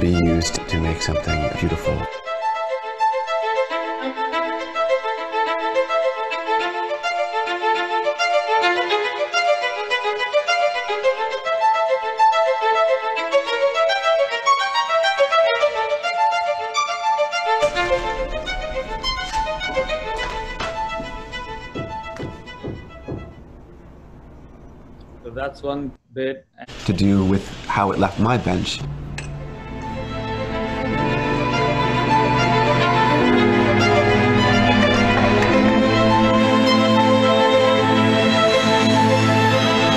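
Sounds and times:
violin melody: 0.0 - 23.9, 27.8 - 39.9.

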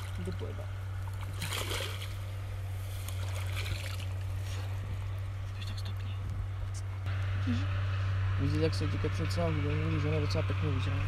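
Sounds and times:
water splashing and sloshing: 0.0 - 5.3
steady low hum: 0.0 - 11.0.

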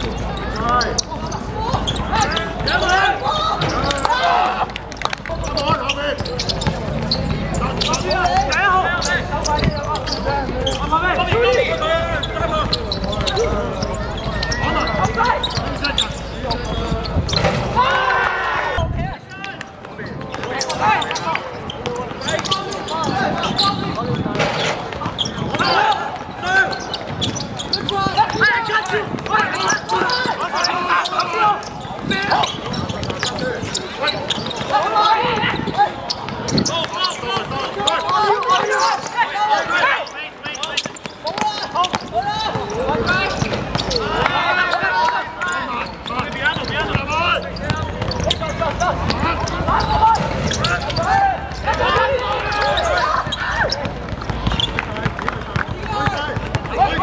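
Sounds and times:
people shouting and talking: 0.0 - 57.0
basketball bouncing on court: 4.9 - 17.7, 19.9 - 38.6, 40.5 - 57.0.

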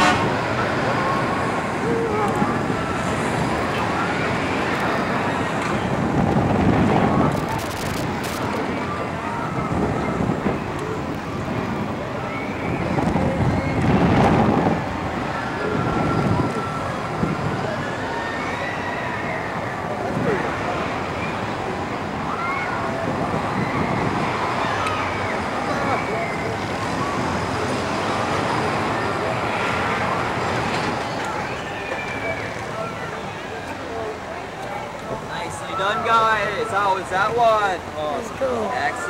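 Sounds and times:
wind rushing over microphone: 0.0 - 31.6.

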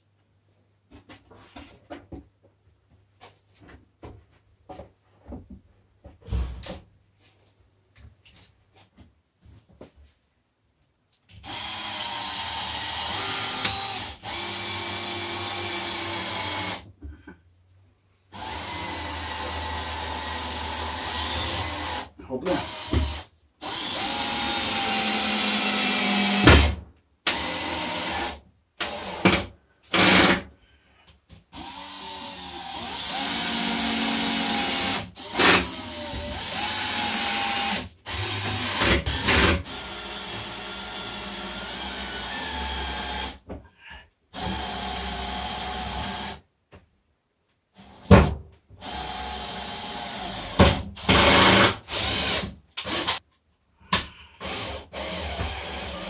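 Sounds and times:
cordless drill driving screws: 11.4 - 16.9, 18.4 - 30.4, 31.5 - 43.4, 44.4 - 46.4, 48.8 - 53.2, 54.4 - 56.0.

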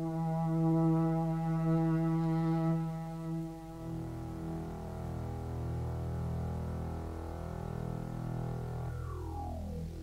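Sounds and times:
low electronic chord: 0.0 - 10.0.

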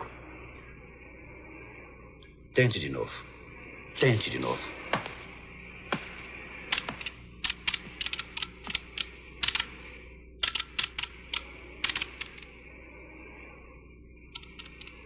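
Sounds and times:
keyboard typing: 6.7 - 9.7, 10.4 - 12.5, 14.3 - 15.0.

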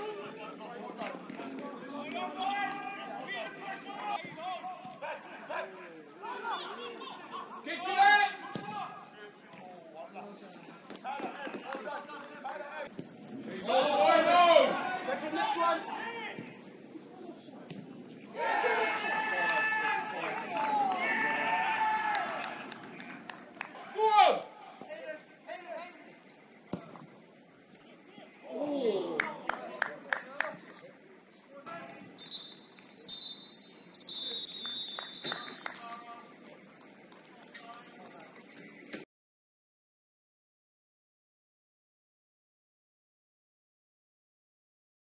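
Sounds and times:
footballers shouting: 0.0 - 9.1, 13.5 - 16.5, 18.3 - 26.0, 28.2 - 29.9
people shouting in celebration: 18.4 - 22.6.

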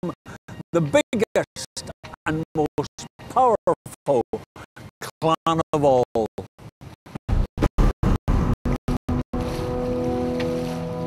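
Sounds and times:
wind: 0.0 - 11.0
water rushing along boat hull: 9.1 - 11.0.

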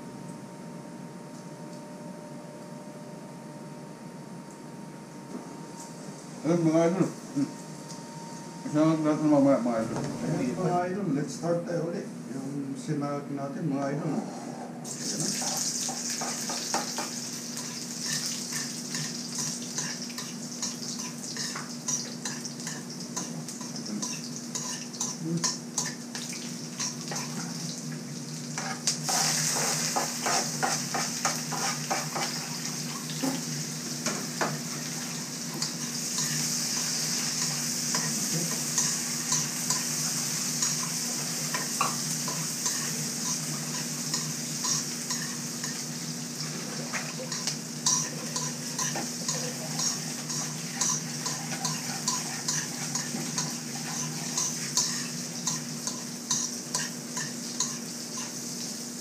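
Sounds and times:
garlic sizzling in hot oil: 14.8 - 59.0.

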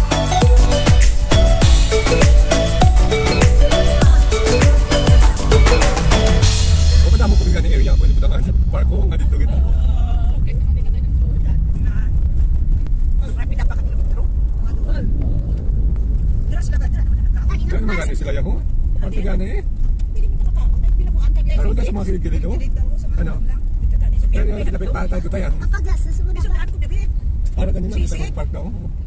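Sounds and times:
car engine and tyres rumbling: 0.0 - 29.0
people talking: 6.7 - 12.1, 13.2 - 15.2, 16.5 - 28.7.

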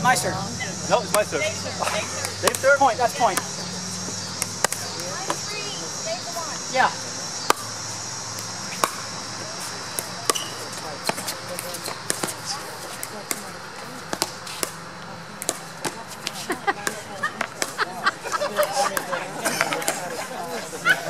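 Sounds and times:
paddles hitting plastic ball: 4.4 - 5.4, 9.9 - 13.5, 14.1 - 14.8, 15.4 - 17.8, 18.6 - 20.1.

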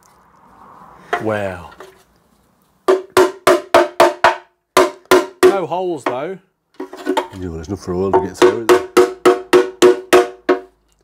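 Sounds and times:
hammer tapping metal: 8.1 - 10.7.

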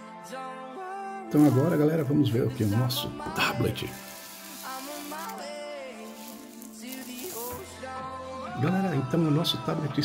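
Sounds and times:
background music with wavering melody: 0.0 - 10.0
plastic sleeve crinkling: 1.3 - 1.9, 2.5 - 7.7.

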